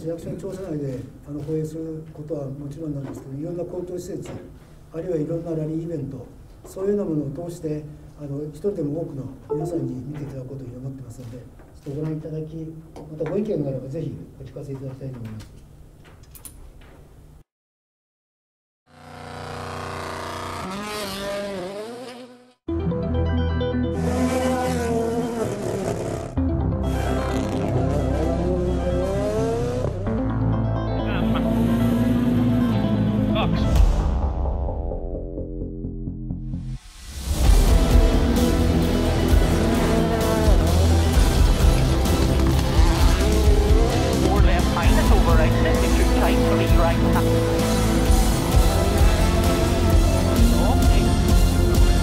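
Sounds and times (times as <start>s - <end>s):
music soundtrack: 9.5s - 10.4s, 22.7s - 25.6s, 26.3s - 52.0s
rally car engine: 19.0s - 22.6s, 24.0s - 26.4s, 27.0s - 30.2s, 31.1s - 33.4s, 37.5s - 52.0s
loud music with strong beat: 37.4s - 52.0s.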